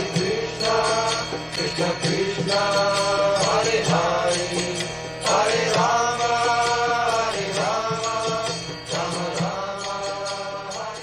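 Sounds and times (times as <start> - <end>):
devotional chanting: 0.0 - 11.0
steady percussion beat: 0.0 - 11.0.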